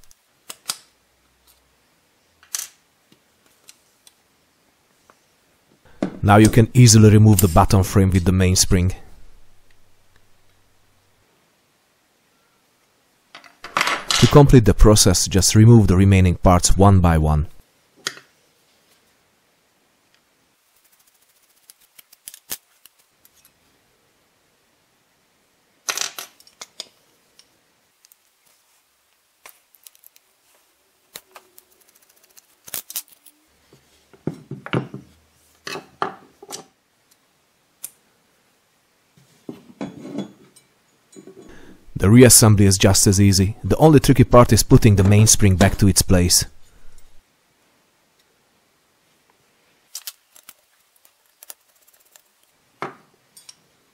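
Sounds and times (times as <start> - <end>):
metal parts clicking and clinking: 31.2 - 33.4.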